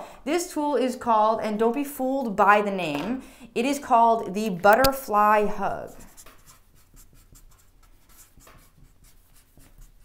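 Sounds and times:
marker pen scratching on board: 5.4 - 10.0.

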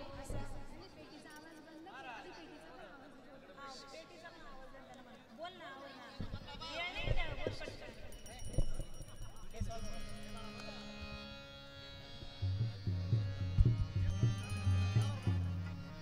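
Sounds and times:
harmonium chord: 9.6 - 16.0
tabla strokes: 10.1 - 16.0
deep ringing bass drum strokes: 12.3 - 16.0.

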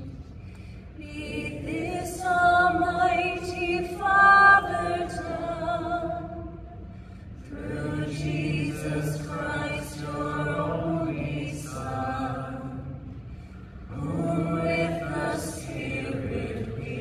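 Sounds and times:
voices chanting in unison: 7.5 - 12.9, 13.9 - 17.0.

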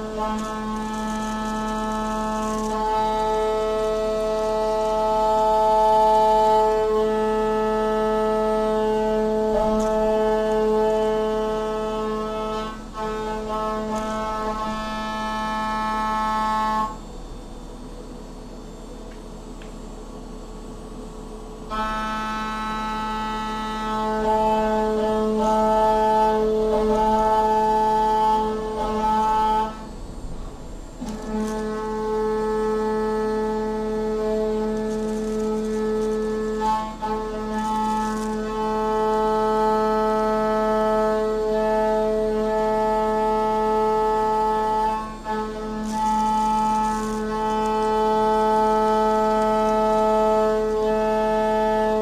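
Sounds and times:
machine hum: 0.0 - 52.0
milling machine cutting metal whine: 0.0 - 52.0.

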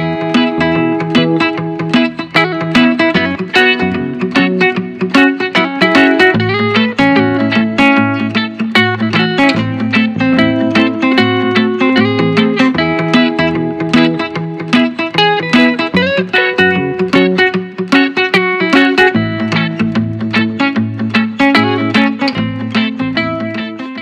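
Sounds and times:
steady bass line: 0.0 - 17.8, 19.1 - 23.8
plucked guitar-like notes: 0.0 - 24.0.

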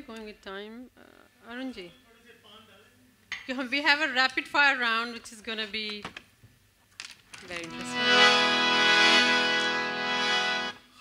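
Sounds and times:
harmonium chord: 7.7 - 11.0.

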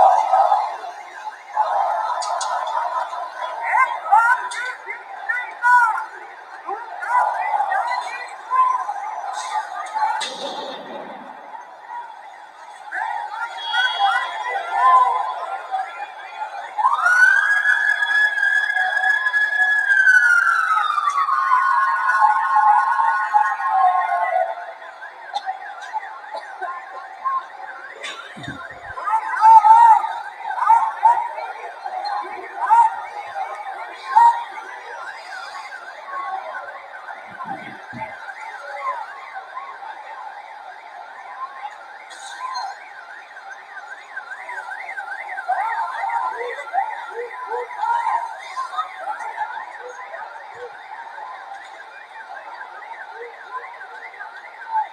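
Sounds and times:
fast warbling siren: 0.0 - 54.9
siren rising and falling: 0.0 - 54.9.

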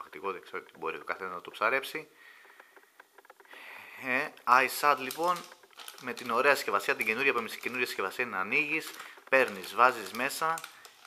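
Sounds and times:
person breathing in through nose: 2.2 - 2.8, 3.5 - 4.0
faint ticks: 2.2 - 4.1.

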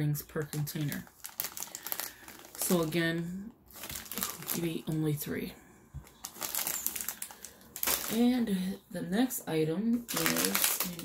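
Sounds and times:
plastic bags crinkling: 0.3 - 5.4, 6.0 - 8.5, 9.9 - 11.0.

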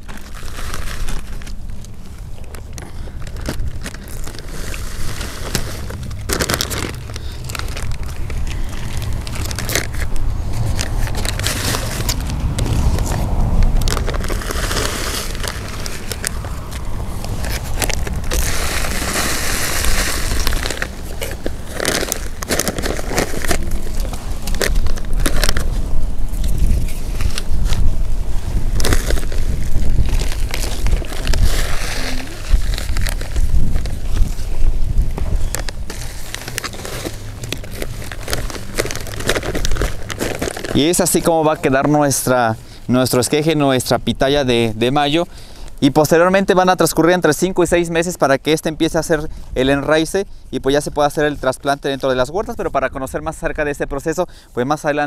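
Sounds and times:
soil scooped and poured: 0.0 - 16.5, 17.2 - 25.6
plastic bag crinkling: 0.0 - 27.9, 28.6 - 42.4
steady low rumble: 0.0 - 54.1.

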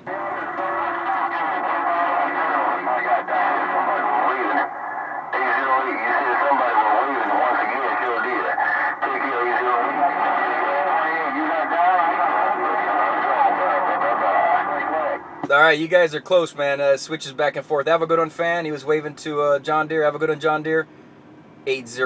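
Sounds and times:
voices over radio speaker: 0.0 - 20.9, 21.6 - 22.0.

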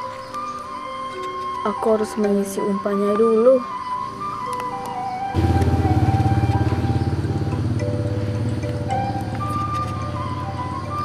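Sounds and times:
simple electronic melody: 0.0 - 11.0
loud low buzzing tone: 5.4 - 10.6.

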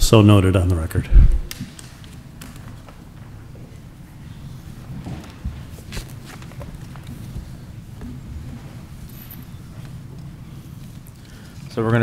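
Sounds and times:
deep thump on microphone: 1.1 - 1.5.

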